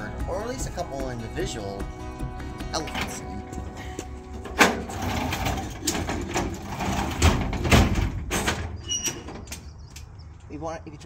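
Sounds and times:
metal trailer door clanking: 0:02.7 - 0:09.8
heavy thuds of door: 0:06.2 - 0:08.8.

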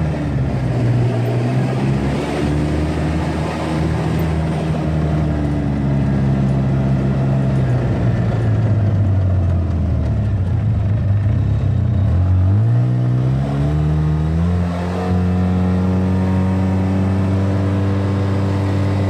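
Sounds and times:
vehicle engine running: 0:00.0 - 0:19.0.

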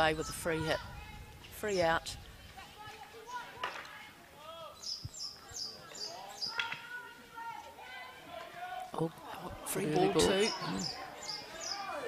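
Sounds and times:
players calling: 0:02.8 - 0:12.0.

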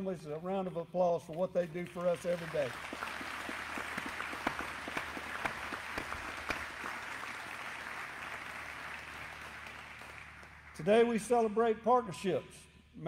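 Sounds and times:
audience applauding: 0:01.9 - 0:10.9.

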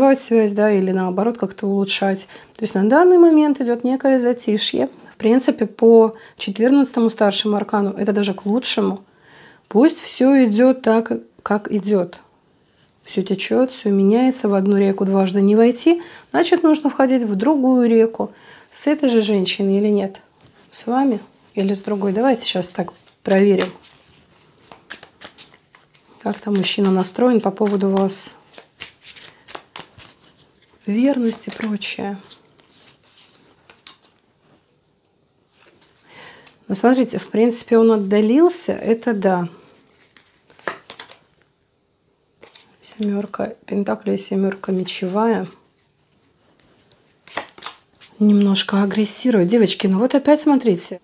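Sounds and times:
cards being shuffled: 0:21.7 - 0:34.2, 0:35.5 - 0:37.4, 0:39.9 - 0:41.3, 0:42.4 - 0:43.4, 0:44.7 - 0:48.3.

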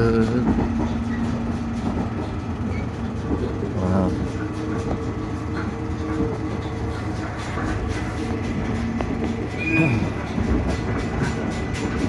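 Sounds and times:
train wheels rumbling on rails: 0:00.0 - 0:12.0.

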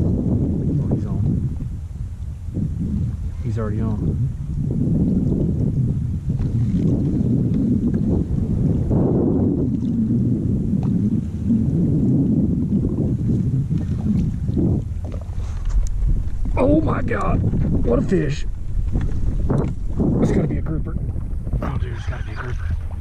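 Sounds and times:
water sloshing against hull: 0:00.0 - 0:23.0
wind gusting on microphone: 0:00.0 - 0:23.0.

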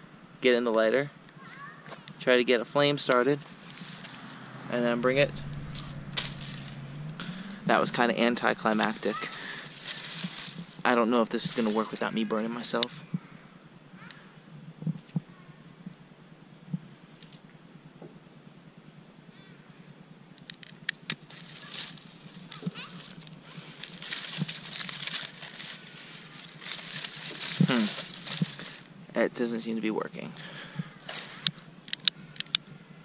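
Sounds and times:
flames crackling through dry stalks: 0:02.9 - 0:13.0, 0:20.4 - 0:29.3
sharp loud crackle: 0:05.0 - 0:10.8, 0:20.9 - 0:28.9.

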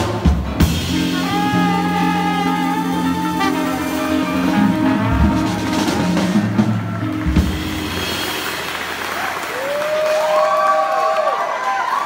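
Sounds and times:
jazz band playing: 0:00.0 - 0:09.8
cheering voices: 0:05.0 - 0:12.0
audience applause: 0:05.6 - 0:12.0.

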